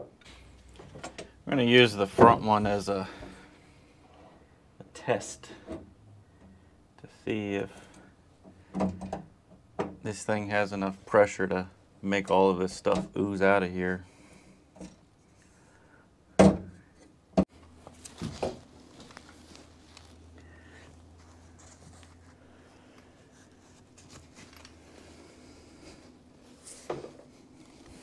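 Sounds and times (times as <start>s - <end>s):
faint steady hum: 0.0s - 28.0s
knocks and clunks on metal roof: 8.6s - 10.0s.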